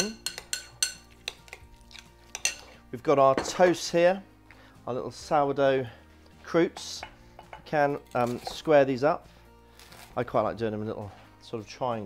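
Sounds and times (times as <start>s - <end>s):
spoon clinking against bowl: 0.0s - 2.7s
spoon stirring in ceramic bowl: 0.0s - 2.8s
faint background music: 0.0s - 12.0s.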